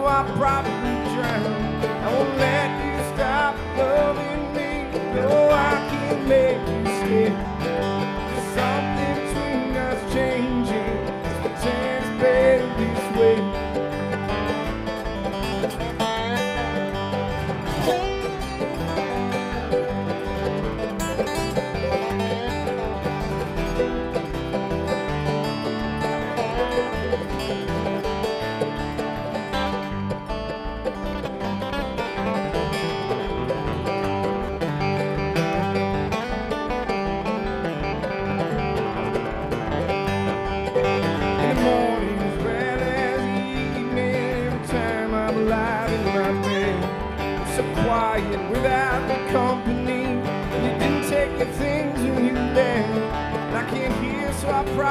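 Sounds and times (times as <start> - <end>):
banjo: 0.0 - 54.9
bluegrass string band playing: 0.0 - 54.9
upright bass: 0.0 - 54.9.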